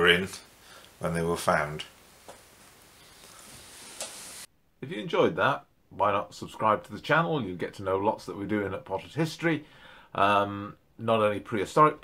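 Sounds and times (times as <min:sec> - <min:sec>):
man speaking: 0:00.0 - 0:01.9, 0:04.8 - 0:09.6, 0:10.2 - 0:12.0
recording hiss: 0:00.0 - 0:12.0.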